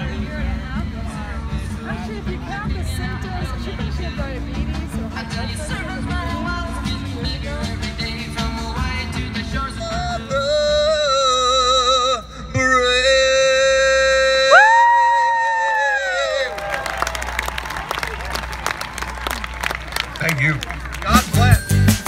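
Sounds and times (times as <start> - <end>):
crowd cheering and applauding: 14.5 - 21.7.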